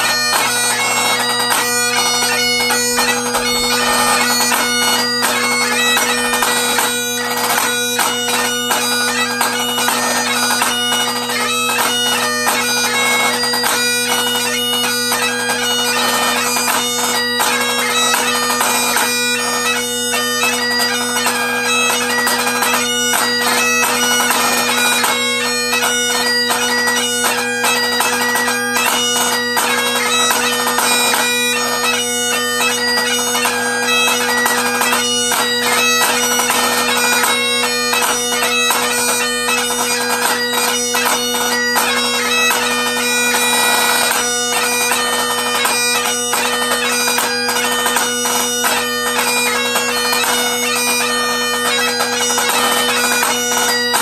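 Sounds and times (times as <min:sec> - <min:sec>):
bagpipe playing a tune: 0:00.0 - 0:54.0.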